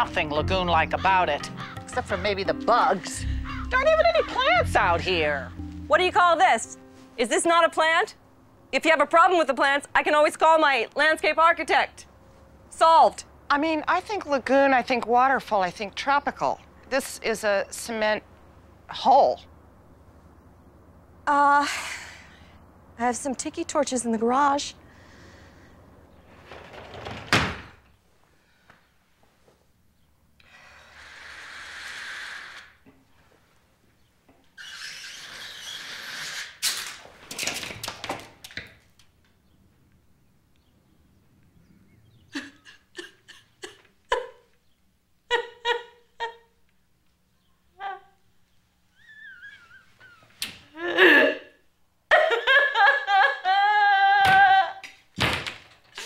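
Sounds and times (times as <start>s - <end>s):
woman sobbing and wailing: 3.2s - 5.1s, 42.3s - 44.5s, 45.3s - 46.6s, 47.8s - 48.2s, 49.0s - 54.9s
sliding glass door banging shut: 26.3s - 27.8s.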